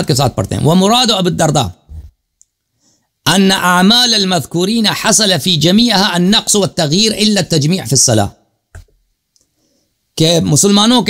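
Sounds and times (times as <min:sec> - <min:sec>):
man speaking: 0:00.0 - 0:02.2, 0:03.2 - 0:08.4, 0:10.2 - 0:11.0.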